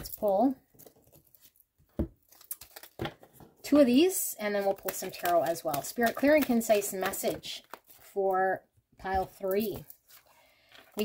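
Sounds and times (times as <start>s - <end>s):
cards rustling and clicking: 0.1s - 3.5s, 4.5s - 8.2s, 9.1s - 11.0s.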